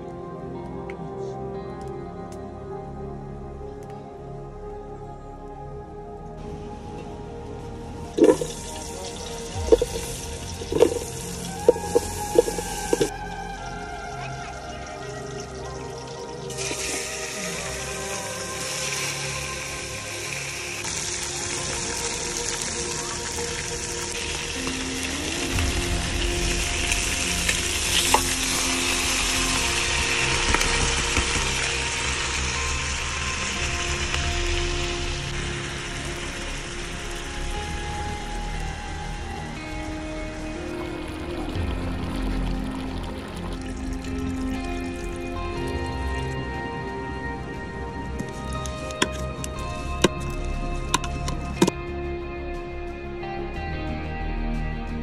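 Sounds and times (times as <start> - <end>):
background music: 0.0 - 55.0
food sizzling in a pot: 8.1 - 13.1, 14.1 - 39.1.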